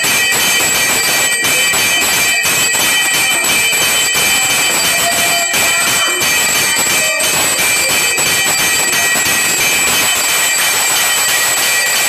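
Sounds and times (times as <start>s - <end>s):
temple bells ringing: 0.0s - 12.0s.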